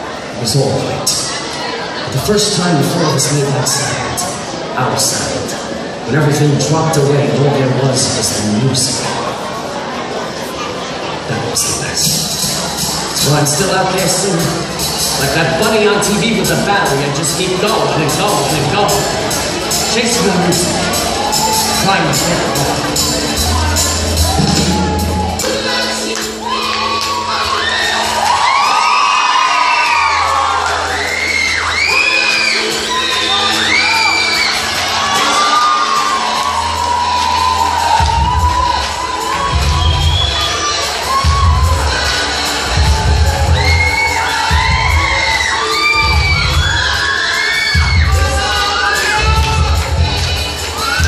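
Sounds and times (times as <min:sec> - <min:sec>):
recorded music: 0:00.0 - 0:10.3, 0:11.1 - 0:51.0
steady bass beat: 0:12.0 - 0:26.4, 0:32.5 - 0:47.1, 0:47.8 - 0:51.0
children shrieking and cheering: 0:17.7 - 0:51.0.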